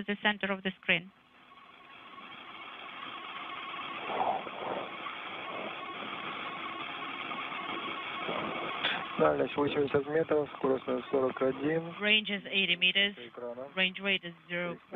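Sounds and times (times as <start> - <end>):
faint steady tone: 0.0 - 14.9
radio channel hiss: 1.6 - 14.9.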